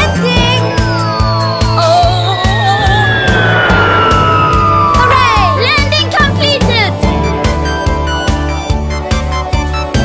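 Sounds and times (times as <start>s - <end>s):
children's song backing music: 0.0s - 3.0s
falling whistle with rushing hiss: 1.4s - 5.8s.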